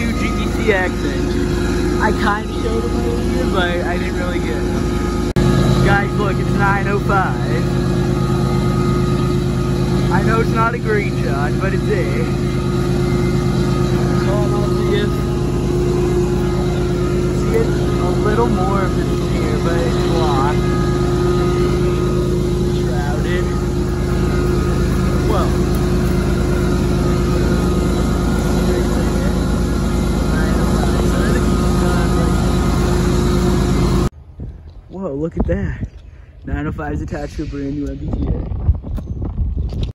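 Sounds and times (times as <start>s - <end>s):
diesel locomotives idling: 0.0s - 34.8s.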